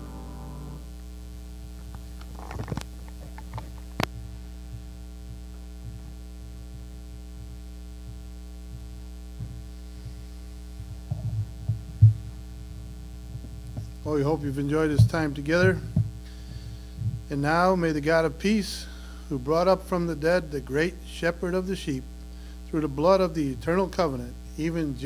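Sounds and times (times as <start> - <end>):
electrical mains hum: 0.0 - 25.0
knocks and footsteps: 1.8 - 14.1, 14.8 - 17.3.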